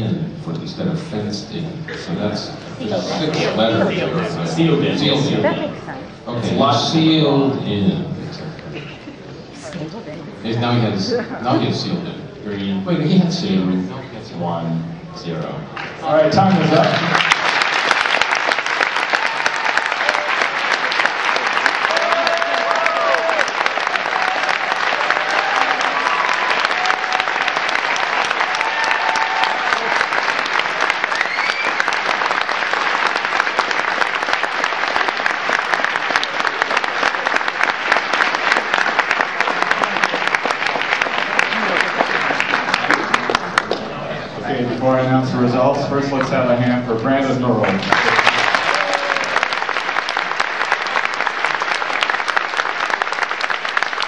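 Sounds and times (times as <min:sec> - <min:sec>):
audience applause: 0:02.8 - 0:07.2, 0:15.8 - 0:44.5, 0:47.5 - 0:54.0.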